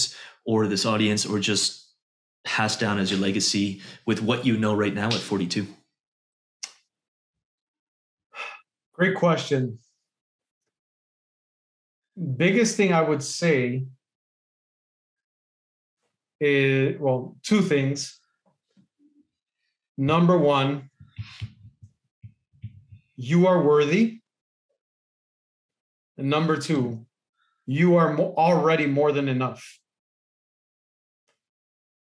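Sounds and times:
man breathing in: 8.4s - 8.6s.

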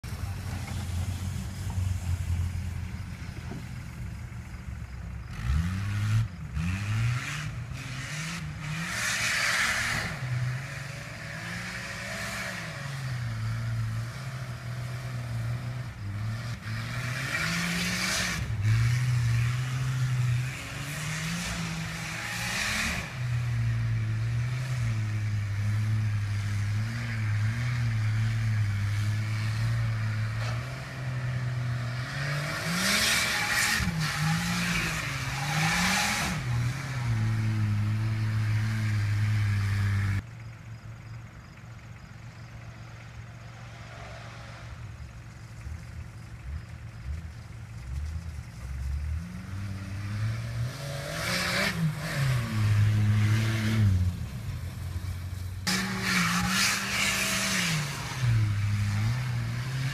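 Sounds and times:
engine revving: 4.2s - 40.2s, 43.5s - 59.9s.

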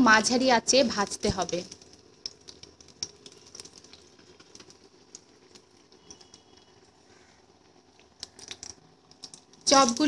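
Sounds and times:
food deep-frying in oil: 0.0s - 10.0s.

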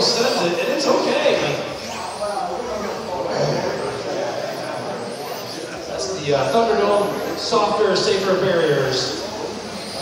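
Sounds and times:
echoing talk: 0.0s - 10.0s
electric motors whining: 0.0s - 10.0s.

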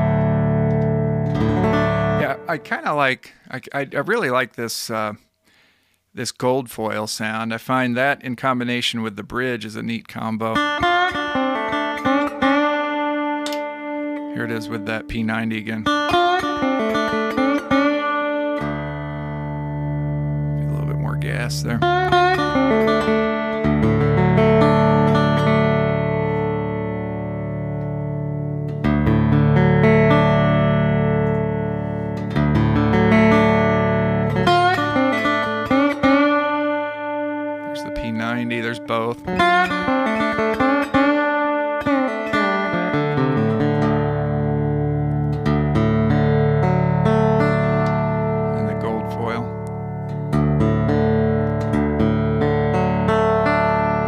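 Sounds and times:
lap steel guitar chords ringing: 0.0s - 4.4s, 10.3s - 54.0s
slide guitar notes gliding: 0.0s - 4.4s, 10.4s - 54.0s.

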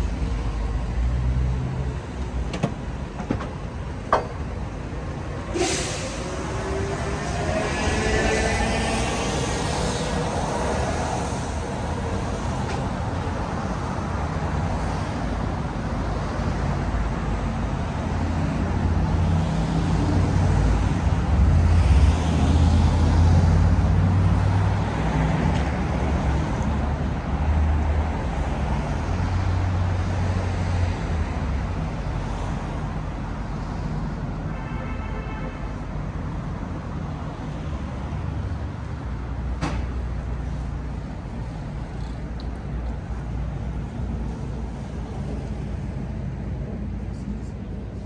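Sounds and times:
cars driving past: 0.0s - 34.5s
vehicle whine rising in pitch: 5.6s - 11.9s.

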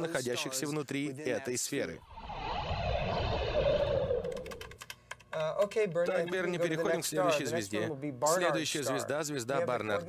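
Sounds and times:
low rumbling drone: 2.0s - 4.8s
keyboard typing: 4.2s - 5.6s.

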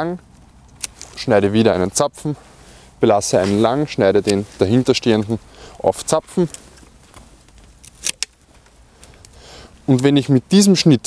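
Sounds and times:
light shear clicks: 0.2s - 1.3s, 3.4s - 10.7s
pruning shears snipping: 0.2s - 2.0s, 3.2s - 10.4s.

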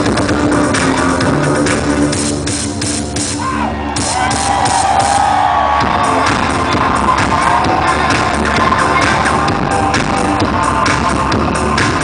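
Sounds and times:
live synth rock band: 0.0s - 12.0s
steady drum beat: 0.0s - 12.0s.

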